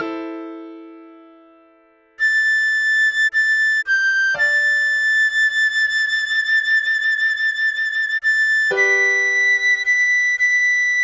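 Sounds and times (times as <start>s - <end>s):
soft piano chord: 0.0s - 2.1s
recorder playing slow melody: 2.2s - 11.0s.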